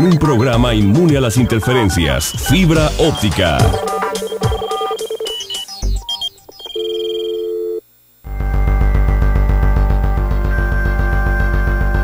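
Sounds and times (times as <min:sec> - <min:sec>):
synthesized notes and blips: 0:00.0 - 0:07.4
held electronic tone: 0:00.0 - 0:08.4.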